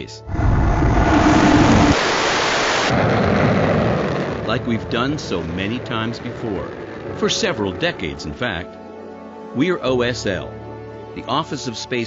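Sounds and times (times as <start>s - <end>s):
rocket engines roaring: 0.3s - 8.8s.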